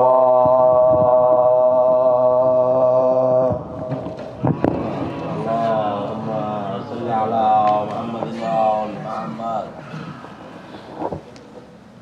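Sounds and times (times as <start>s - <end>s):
man chanting a long note: 0.0s - 9.8s
low voices: 0.0s - 11.7s
sharp knocks: 3.8s - 5.2s.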